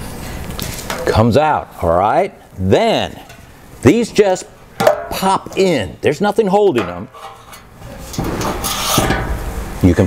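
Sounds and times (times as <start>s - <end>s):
rubbing and scraping in fuel tank: 7.1s - 9.3s.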